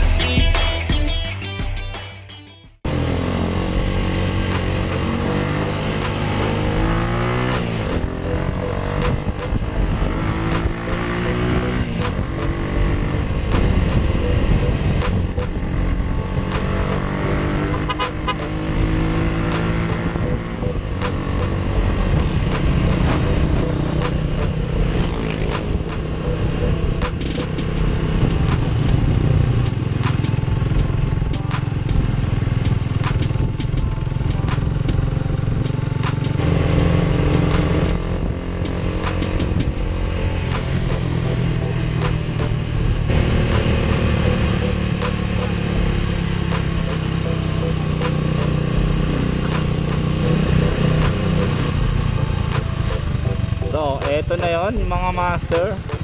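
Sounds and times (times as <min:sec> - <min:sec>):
music playing: 0:00.0 - 0:56.0
motorcycle engine running: 0:02.8 - 0:56.0.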